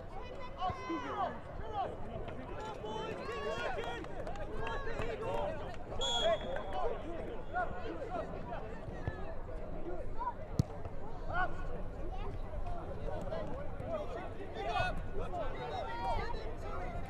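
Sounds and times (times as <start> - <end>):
referee whistle blast: 6.0 - 6.8.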